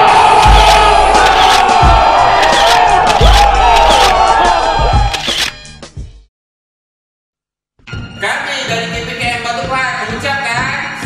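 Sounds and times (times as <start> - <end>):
men shouting together: 0.0 - 5.1
music with heavy low beat: 0.0 - 6.3.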